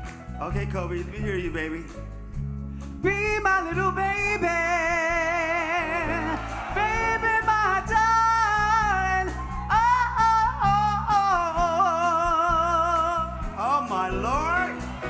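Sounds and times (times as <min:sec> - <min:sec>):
live band music: 0:00.0 - 0:15.0.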